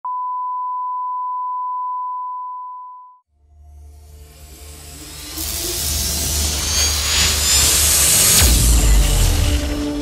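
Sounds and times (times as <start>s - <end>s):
steady test tone beep: 0.0s - 3.2s.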